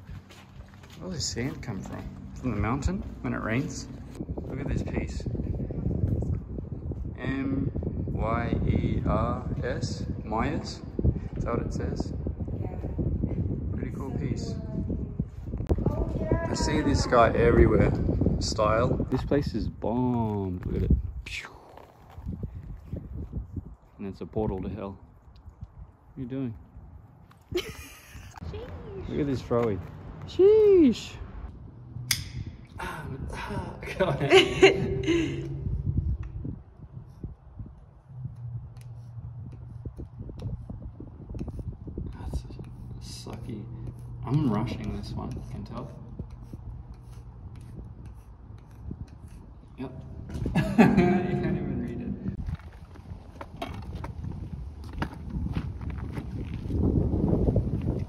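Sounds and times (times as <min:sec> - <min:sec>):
footsteps on sandy concrete: 0:00.0 - 0:04.7, 0:52.3 - 0:58.0
tool scratching concrete: 0:41.4 - 0:49.7.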